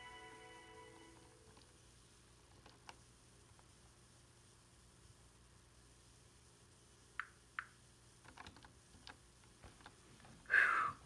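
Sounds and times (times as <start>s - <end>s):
computer keys clicking: 7.2s - 10.0s.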